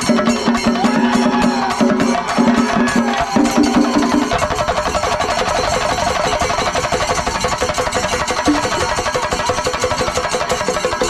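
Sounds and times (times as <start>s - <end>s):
drums beaten rapidly with sticks: 0.0s - 11.0s
hand cymbals: 0.0s - 11.0s.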